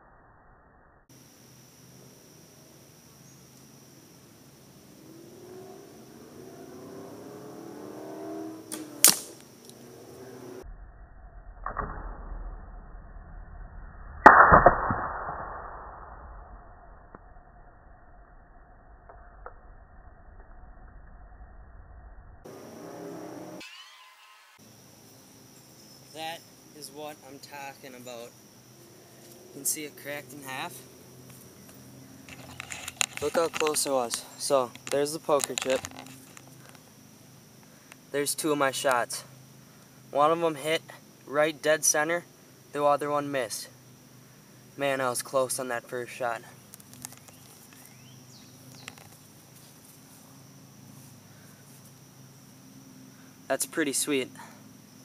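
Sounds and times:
arrow hitting target crack: 8.2 - 9.9, 11.6 - 12.5, 14.2 - 16.1
slowed-down thud and smack: 14.2 - 15.9
thin high tone: 23.0 - 28.3
camera handling clicks and rustles: 32.3 - 33.8.

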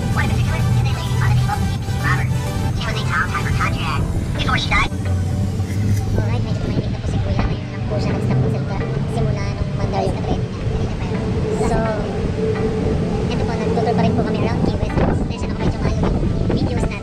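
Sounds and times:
engine hum and road rumble: 0.0 - 17.0
people's voices: 0.0 - 17.0.

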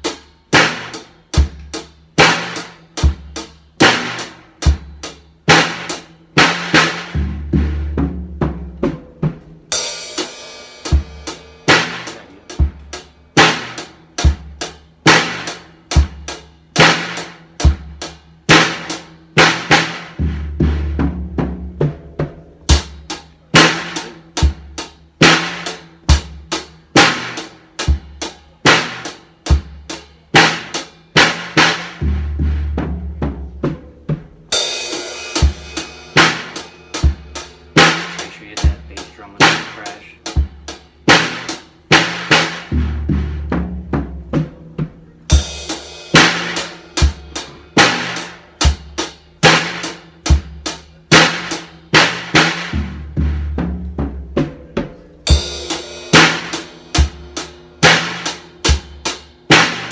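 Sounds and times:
drum fill on snare and toms: 0.0 - 59.9
drum kit beat: 0.0 - 59.9.

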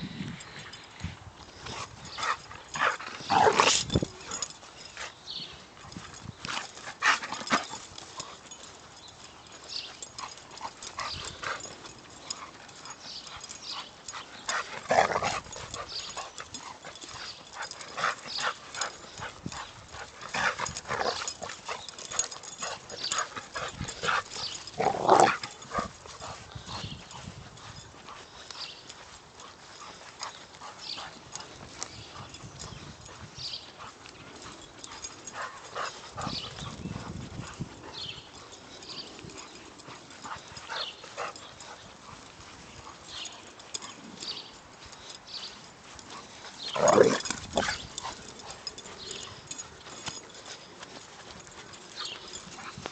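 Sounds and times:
dog paws pattering on grass: 0.0 - 52.9
dog breathing: 0.2 - 52.9.

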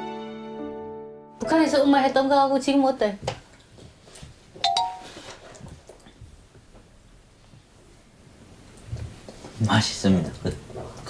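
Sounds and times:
two-note chime: 4.6 - 5.2.

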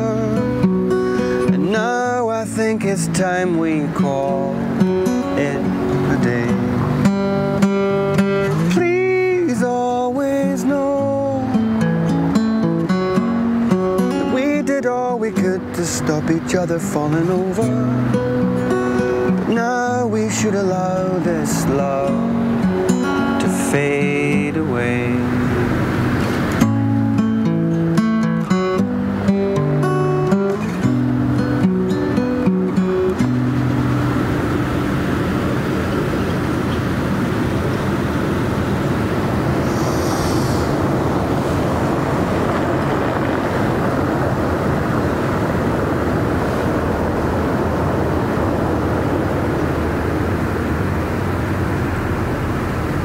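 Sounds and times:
acoustic guitar picked notes: 0.0 - 53.0
distant traffic: 0.0 - 53.0.

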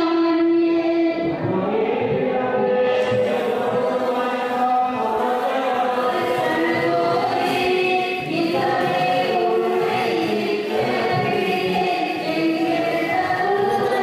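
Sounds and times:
group singing devotional chant: 0.0 - 14.0.

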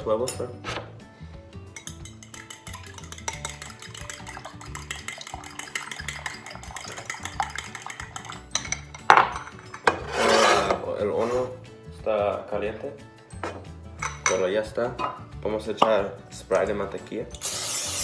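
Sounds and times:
utensil beating eggs in bowl: 1.8 - 8.9.

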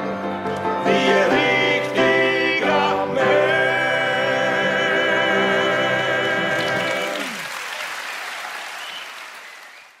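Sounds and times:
audience applause: 6.2 - 10.0.

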